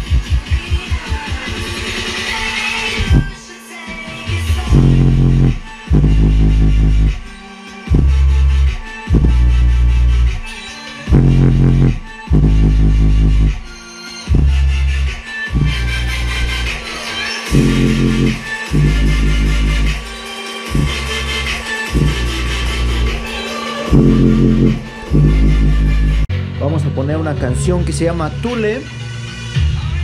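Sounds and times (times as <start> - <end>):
bass-heavy electronic music: 0.0 - 30.0.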